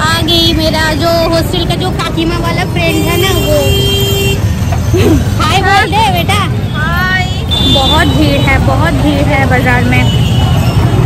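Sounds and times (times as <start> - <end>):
crowd noise: 0.0 - 11.0
street traffic: 0.0 - 11.0
vehicle horn: 2.9 - 4.5.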